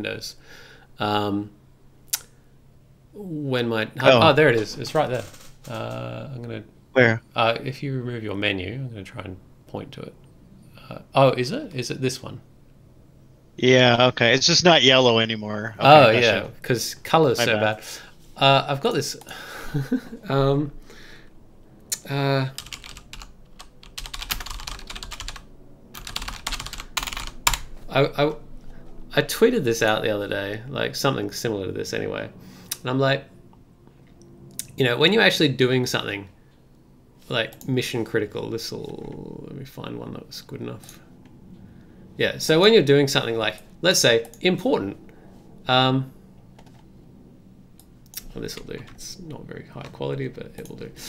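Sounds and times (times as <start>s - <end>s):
low steady hum: 0.0s - 51.0s
typing on computer keyboard: 22.5s - 25.4s, 26.0s - 27.7s.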